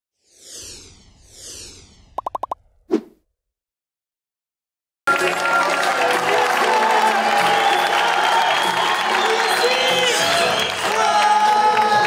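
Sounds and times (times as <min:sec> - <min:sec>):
low synthetic pop: 0:02.2 - 0:02.6
synthetic plinks: 0:02.2 - 0:02.6.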